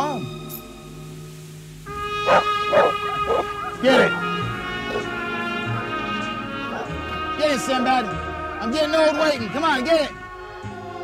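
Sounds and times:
background music with held tones: 0.0 - 11.0
dog barking: 2.2 - 5.2, 6.6 - 7.0.

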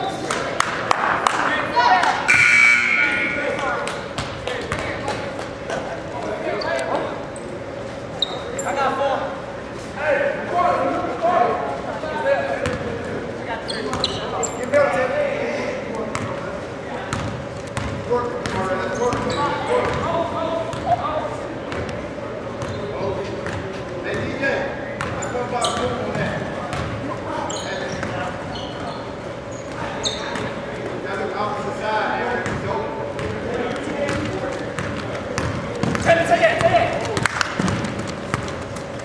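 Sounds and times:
echoing crowd voices: 0.0 - 39.0
thin steady hum: 2.2 - 3.8
basketball bouncing on court: 4.1 - 5.1, 17.1 - 21.0, 22.6 - 22.8, 23.4 - 24.3, 25.0 - 27.0, 27.9 - 28.2, 32.4 - 38.8.

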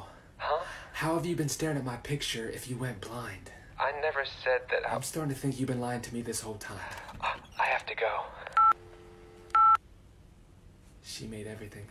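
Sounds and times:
telephone dial tone: 8.5 - 9.8.

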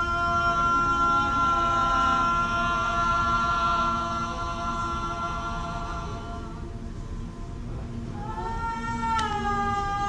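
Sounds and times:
choir holding a chord: 0.0 - 6.8, 8.2 - 10.0.

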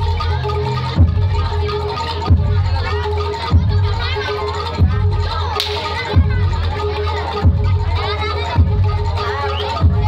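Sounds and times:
live music with deep drum beat: 0.0 - 10.0
whip crack: 5.6 - 5.9.

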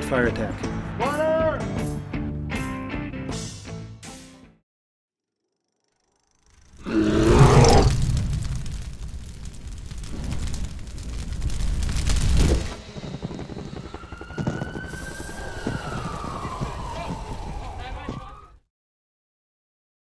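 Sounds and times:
siren wail: 13.2 - 18.6.

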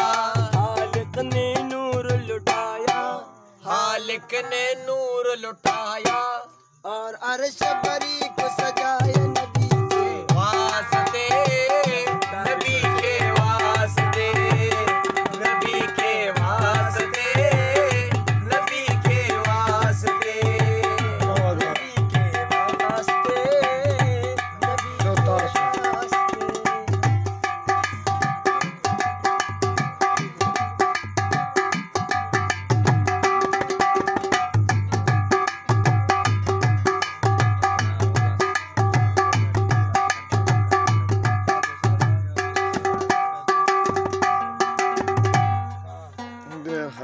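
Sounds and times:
hand-struck pot drum: 7.6 - 45.8.

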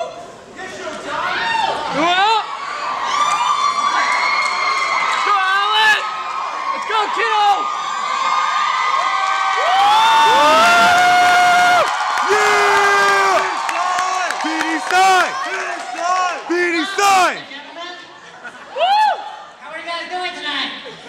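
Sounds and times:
crowd cheering and whooping: 1.4 - 17.4, 18.7 - 19.5
long held shouts: 9.6 - 17.4.

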